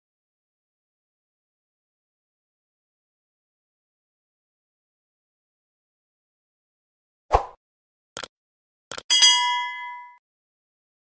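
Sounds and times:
bright bell ding: 9.1s - 10.2s.

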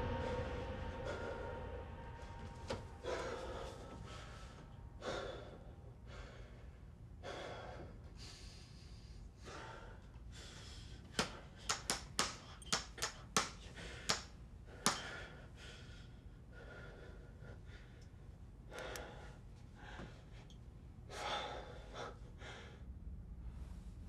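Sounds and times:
man breathing heavily: 0.0s - 23.7s.

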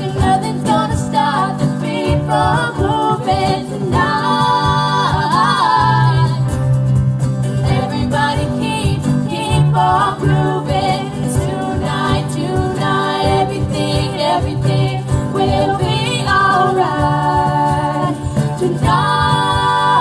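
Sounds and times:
women singing: 0.0s - 6.7s, 7.6s - 20.0s
cajon beat: 0.0s - 20.0s
strummed acoustic guitars: 0.0s - 20.0s.

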